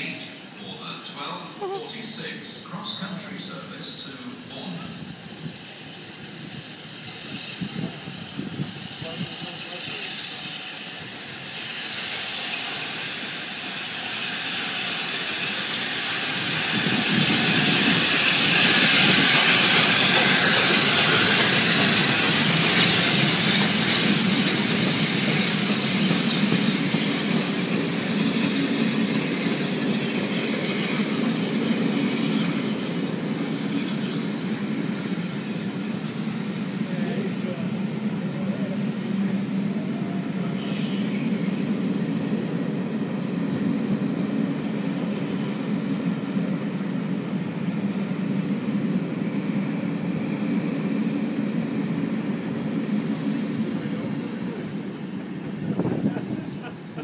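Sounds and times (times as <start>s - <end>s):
hissing rush of steam: 0.0s - 57.0s
steam locomotive passing: 0.0s - 57.0s.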